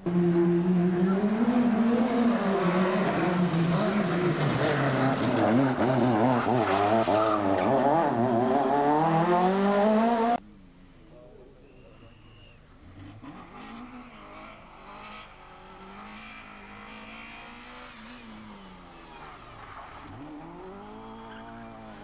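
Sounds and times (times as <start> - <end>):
rally car engine at high revs: 0.0 - 10.4, 12.8 - 22.0.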